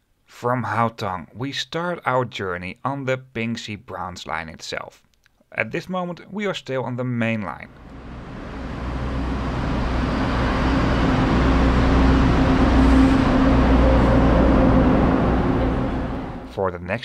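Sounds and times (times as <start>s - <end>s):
steady hum: 7.7s - 16.6s
train wheels rumbling on rails: 7.7s - 16.6s.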